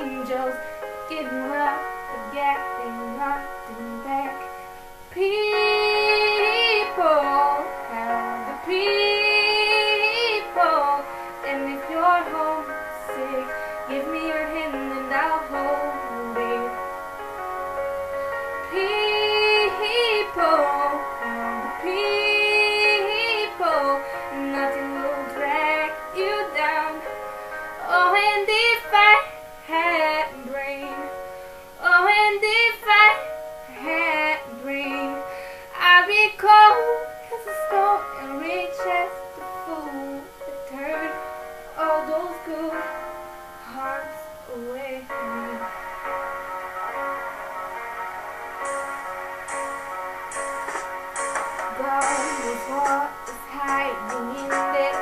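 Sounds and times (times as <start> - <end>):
woman singing: 0.0 - 4.5, 5.2 - 16.9, 18.6 - 27.2, 27.8 - 31.2, 31.8 - 45.7, 51.6 - 55.0
instrumental backing of held chords: 0.0 - 55.0.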